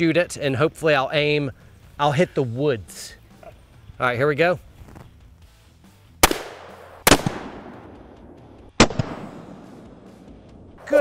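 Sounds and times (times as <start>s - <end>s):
revolver gunshots with echo: 6.2s - 10.0s.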